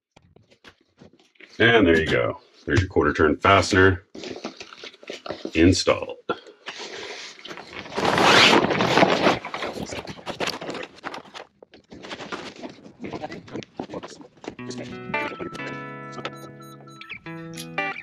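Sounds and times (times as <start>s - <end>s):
rustling and handling noise: 4.0s - 5.7s, 6.5s - 16.5s
background guitar music: 14.6s - 18.0s.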